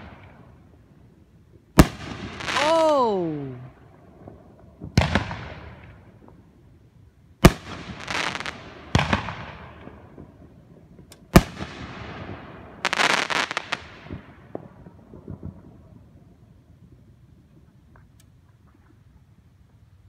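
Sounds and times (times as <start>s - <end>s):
fireworks crackling: 0.0s - 20.0s
fireworks bangs with echo: 1.8s - 3.3s, 4.8s - 6.2s, 7.4s - 10.6s, 11.3s - 16.0s.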